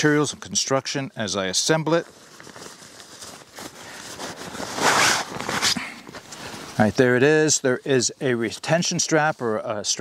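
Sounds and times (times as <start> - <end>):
nylon fabric rustling and scraping: 1.5 - 10.0
nylon swish: 4.1 - 5.8.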